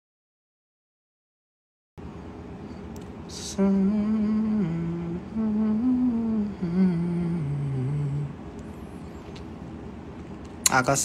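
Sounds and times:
man humming a tune: 0:03.3 - 0:08.6.

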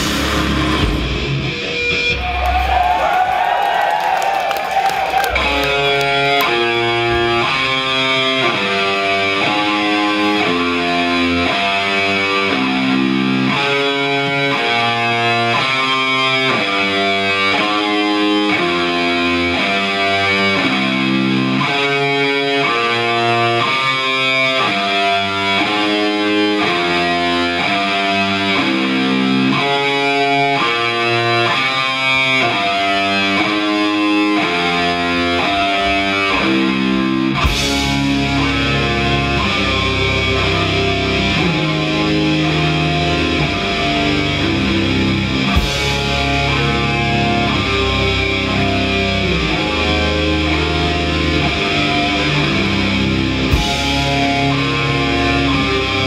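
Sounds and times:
cymbal crash: 0:00.0 - 0:01.4
distorted electric guitar riff: 0:00.0 - 0:02.6, 0:05.0 - 0:56.0
wailing guitar tone: 0:00.0 - 0:56.0.

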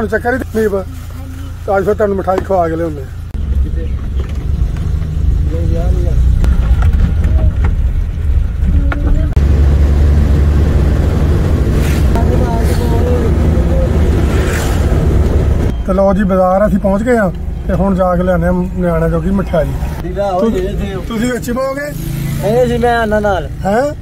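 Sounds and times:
van engine and road noise: 0:00.0 - 0:24.0.

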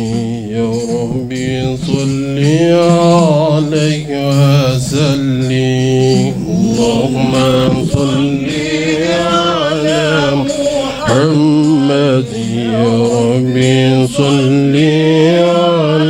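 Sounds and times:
man chanting into a microphone: 0:00.0 - 0:16.0.

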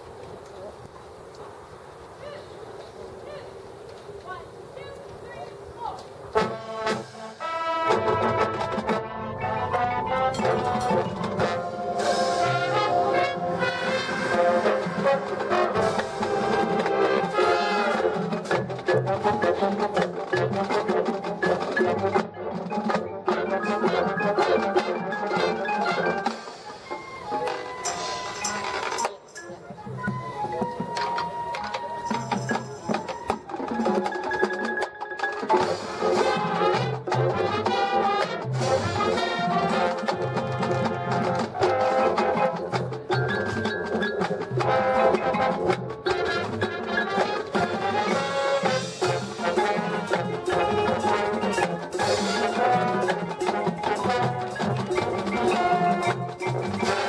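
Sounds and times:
marching band playing: 0:05.8 - 0:57.0.

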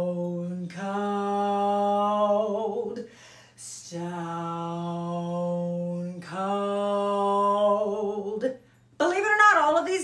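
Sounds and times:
woman singing low vocal exercise: 0:00.0 - 0:10.0.

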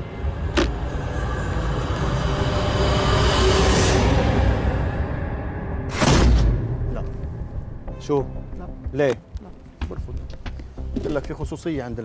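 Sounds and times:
rushing noise riser: 0:00.0 - 0:07.4
low rumbling drone: 0:00.0 - 0:08.8.

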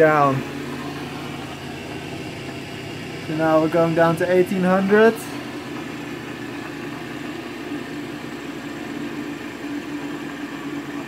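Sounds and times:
electric motor humming: 0:00.0 - 0:11.0.

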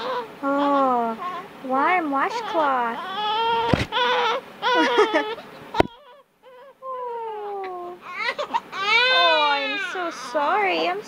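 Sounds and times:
baby crying: 0:00.0 - 0:01.5, 0:02.3 - 0:10.8.

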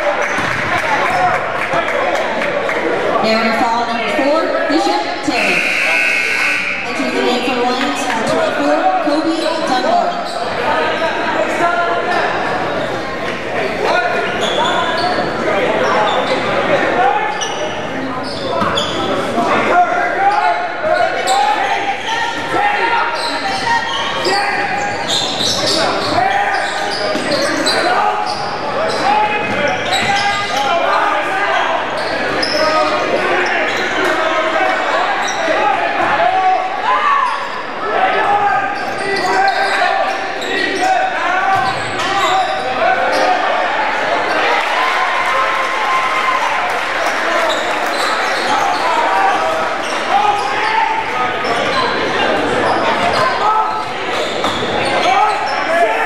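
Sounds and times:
indistinct shouting and chatter: 0:00.0 - 0:56.0.

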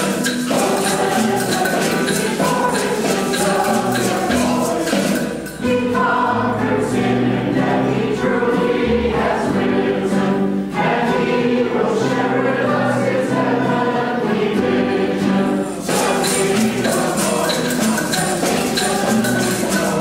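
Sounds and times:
congregation singing a hymn: 0:00.0 - 0:20.0
guitars: 0:00.0 - 0:20.0.

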